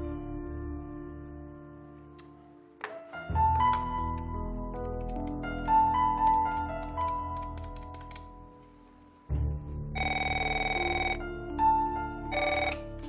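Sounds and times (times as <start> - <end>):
soft background music: 0.0 - 13.0
telephone ringing electronic trill: 10.0 - 11.3, 12.3 - 12.9.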